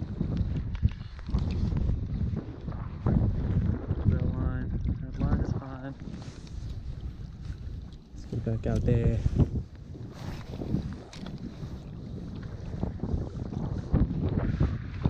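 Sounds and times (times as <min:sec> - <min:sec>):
wind buffeting microphone: 0:00.0 - 0:15.0
man's voice: 0:08.2 - 0:09.4.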